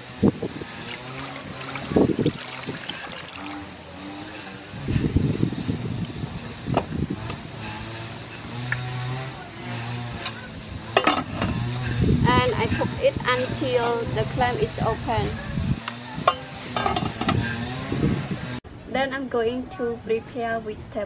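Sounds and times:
water poured over clams: 0.6 - 3.7.

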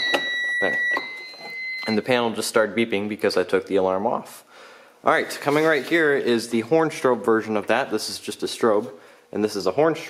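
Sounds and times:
alarm panel beeping high tone: 0.0 - 2.2.

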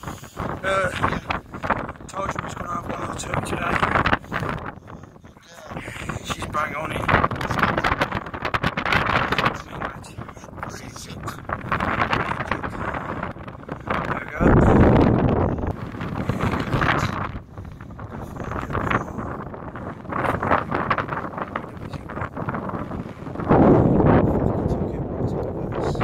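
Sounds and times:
low rumbling blast: 0.0 - 26.0
wind buffeting microphone: 0.0 - 26.0.

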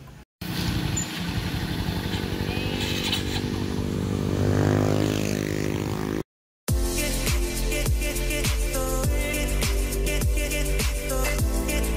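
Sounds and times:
small motorcycle engine idling: 0.6 - 3.8.

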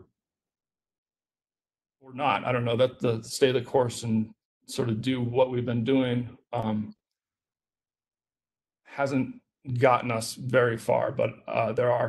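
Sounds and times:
man speaking: 2.0 - 7.0, 8.9 - 12.0.

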